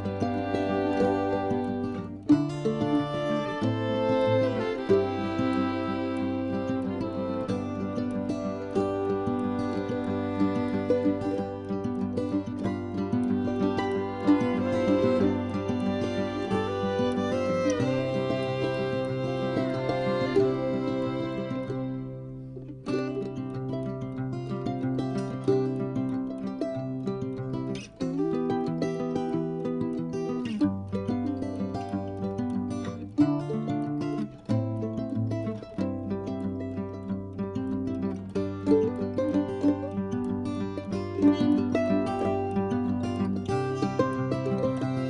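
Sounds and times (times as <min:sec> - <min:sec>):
plucked string melody: 0:00.0 - 0:45.0.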